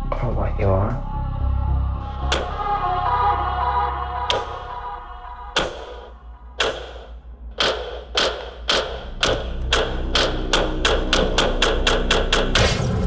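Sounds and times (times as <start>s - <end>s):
low drone: 0.0s - 6.6s
heavy percussive thuds: 5.6s - 13.0s.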